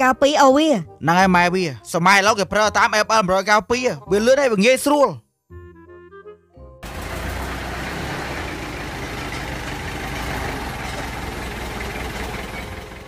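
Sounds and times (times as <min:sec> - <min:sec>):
truck engine idling: 0:06.8 - 0:13.0.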